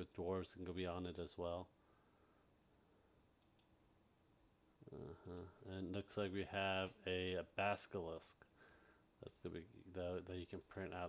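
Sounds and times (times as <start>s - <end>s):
faint computer mouse clicks: 3.4s - 3.7s.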